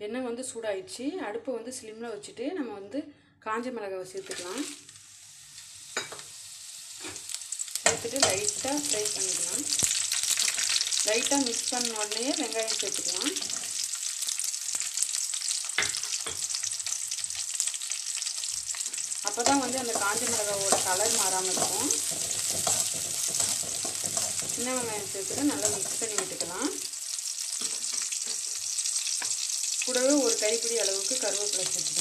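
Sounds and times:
shallots sizzling in hot oil: 4.1s - 32.0s.

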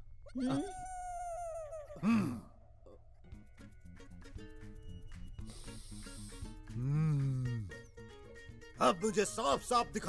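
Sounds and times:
man groaning: 1.9s - 2.5s
faint background music: 3.2s - 10.0s.

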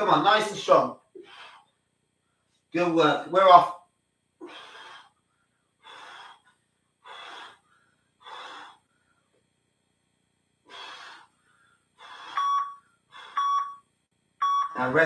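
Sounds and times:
man breathing hard: 1.1s - 2.6s, 4.4s - 9.4s, 10.6s - 13.6s
electronic timer beep: 12.3s - 15.0s.

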